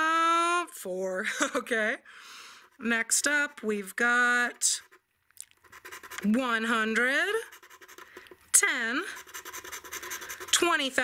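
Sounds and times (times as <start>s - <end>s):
person speaking: 2.7s - 11.0s
coin scratching lottery ticket: 5.6s - 11.0s.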